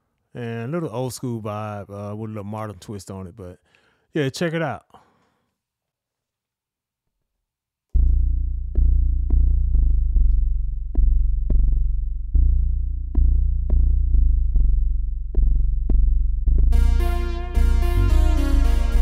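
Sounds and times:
deep synth bass line: 0:08.0 - 0:19.0
bright synth layer: 0:16.8 - 0:19.0.

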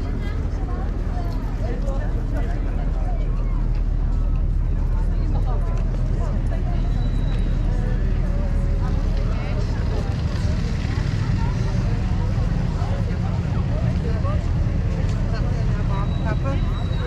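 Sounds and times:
passers-by talking: 0:00.0 - 0:17.0
traffic rumble: 0:00.0 - 0:17.0
wind: 0:00.0 - 0:17.0.

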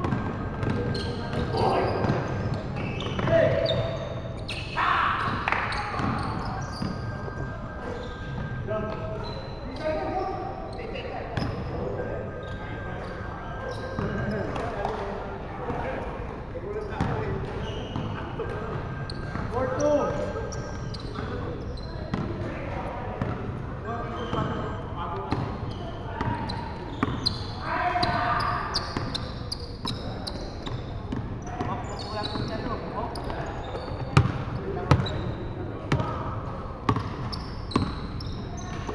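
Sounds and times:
basketball bouncing on wooden floor: 0:34.2 - 0:35.1, 0:36.9 - 0:38.0.

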